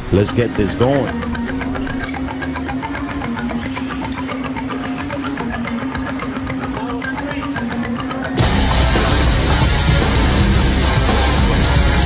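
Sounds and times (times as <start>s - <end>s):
rock music with drum beat: 1.0s - 12.0s.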